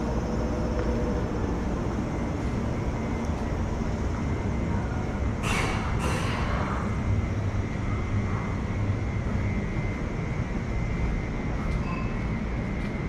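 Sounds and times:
train rumbling over viaduct: 0.0s - 13.0s.

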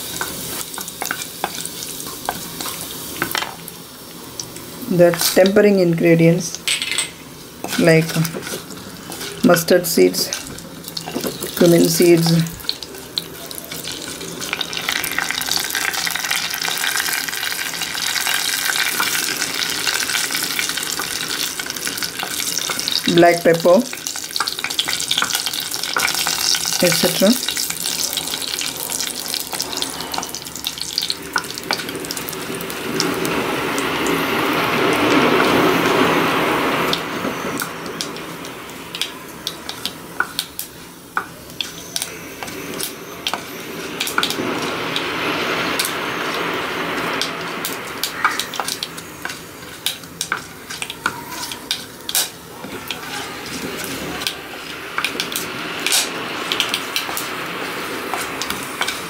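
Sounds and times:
spices sizzling in hot oil: 0.0s - 59.0s
wooden spatula stirring: 7.6s - 9.4s, 47.4s - 59.0s.

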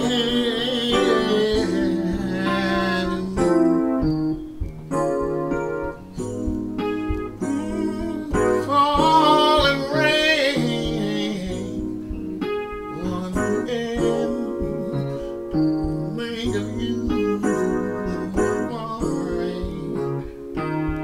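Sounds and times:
electronic keyboard chords: 0.0s - 21.0s.

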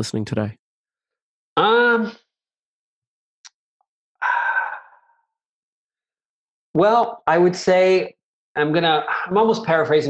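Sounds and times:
man sighing: 4.2s - 5.2s.

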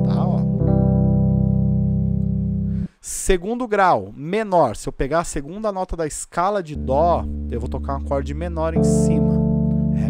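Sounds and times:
keyboard chord held: 0.0s - 2.9s, 6.8s - 10.0s.

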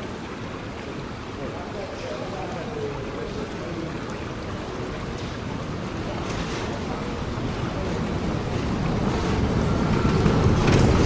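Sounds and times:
trolleybus tyres rumbling on cobblestones: 0.0s - 11.0s.

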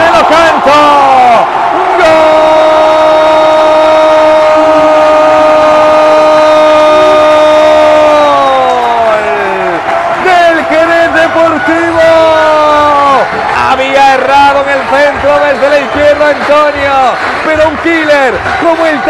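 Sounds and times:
commentator shouting: 0.0s - 19.0s.

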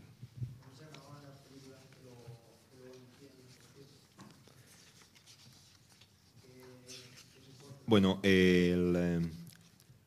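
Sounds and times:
paper sheets rustling: 0.6s - 7.9s.

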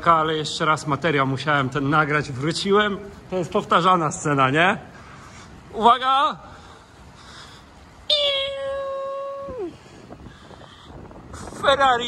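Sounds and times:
man imitating engine: 8.1s - 9.8s.

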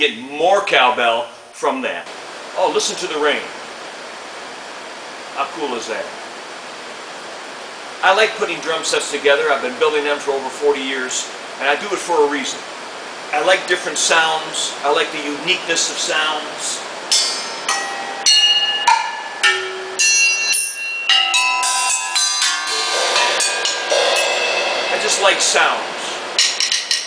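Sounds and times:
steady rain hiss: 0.0s - 27.0s
drumsticks hitting cymbals and bells: 17.1s - 27.0s.

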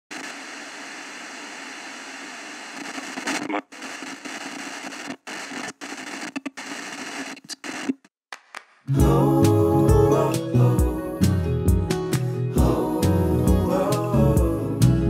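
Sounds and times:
radio static hissing: 0.1s - 8.1s.

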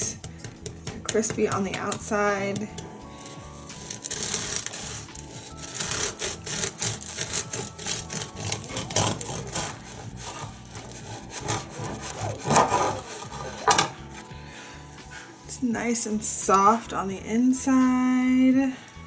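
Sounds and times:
bread knife sawing crusty loaf: 2.4s - 13.9s.

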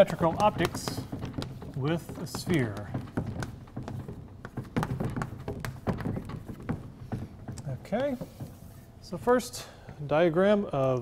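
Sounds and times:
chalk tapping and scraping on blackboard: 0.0s - 9.4s.

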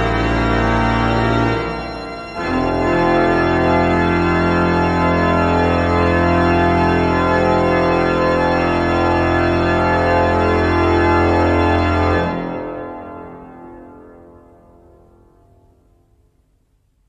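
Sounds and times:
pipe organ chord: 0.0s - 16.2s
church reverberation: 0.0s - 16.7s.

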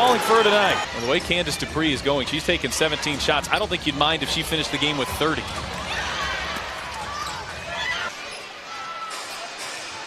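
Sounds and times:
arena crowd noise: 0.0s - 10.0s
sneaker squeaks: 6.5s - 9.8s.

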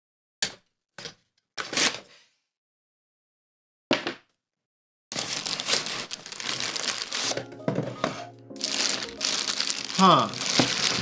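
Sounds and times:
cardboard scraping rustle: 5.2s - 11.0s.

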